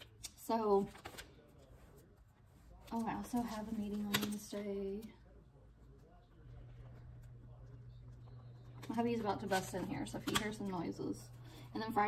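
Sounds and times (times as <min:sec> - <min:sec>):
steady low hum: 0:01.5 - 0:12.0.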